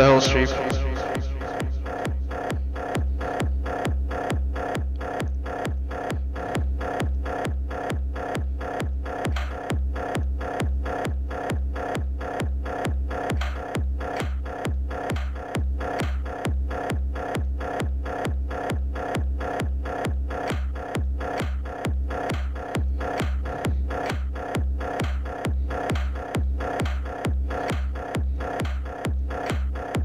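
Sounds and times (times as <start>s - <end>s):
sharp clicky hits: 0.0s - 11.4s, 12.2s - 16.4s, 19.9s - 30.0s
chiptune music: 0.0s - 30.0s
steady kick drum: 0.0s - 30.0s.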